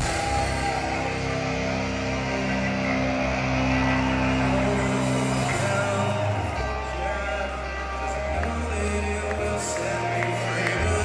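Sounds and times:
rock band instrumental chords: 0:00.0 - 0:11.0.

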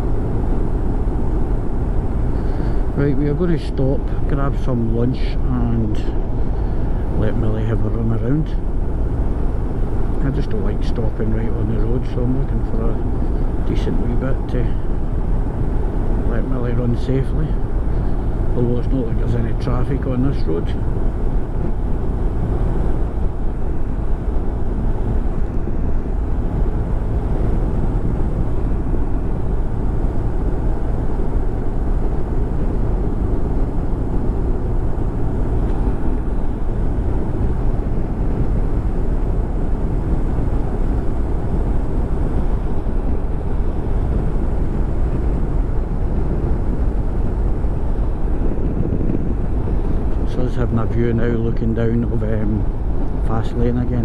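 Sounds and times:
wind rushing on microphone: 0:00.0 - 0:54.0.

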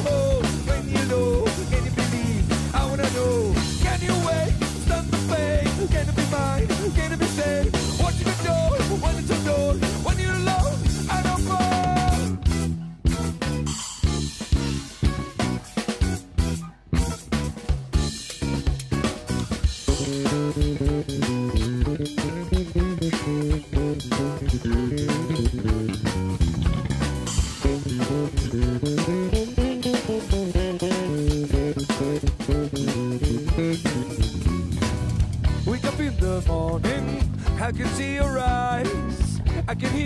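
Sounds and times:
drum kit beat: 0:00.0 - 0:40.0
electric bass line: 0:00.0 - 0:40.0
guitar: 0:00.0 - 0:40.0.

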